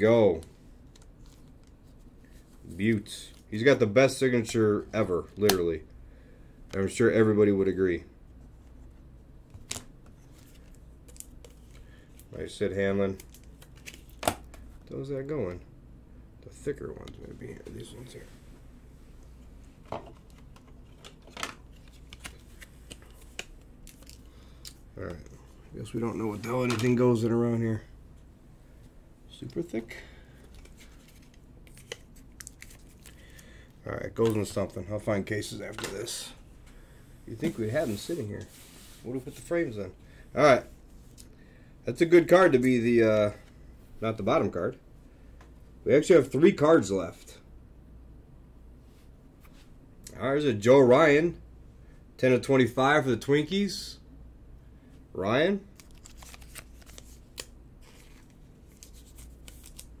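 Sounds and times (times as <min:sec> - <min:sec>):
trading cards being handled: 0:09.5 - 0:14.8, 0:19.2 - 0:27.1, 0:29.3 - 0:36.3, 0:37.3 - 0:39.5, 0:55.7 - 1:00.0.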